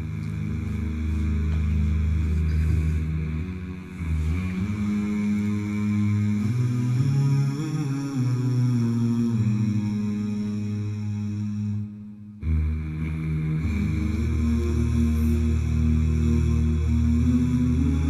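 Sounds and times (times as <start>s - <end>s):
deep sustained humming voices: 0.0s - 18.0s.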